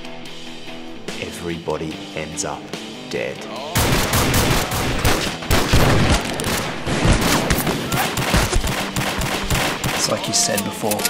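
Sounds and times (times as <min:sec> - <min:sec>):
rapid handgun shots: 0:03.8 - 0:10.6.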